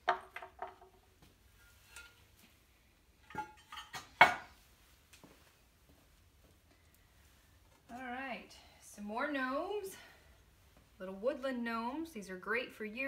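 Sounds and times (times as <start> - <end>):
kiln shelves clinking: 3.2 - 4.6.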